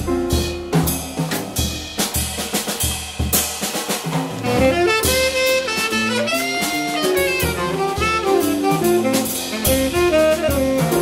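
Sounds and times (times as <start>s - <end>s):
drum kit snare and cymbals: 0.0s - 11.0s
jazz combo playing: 0.0s - 11.0s
tenor saxophone line: 4.4s - 11.0s.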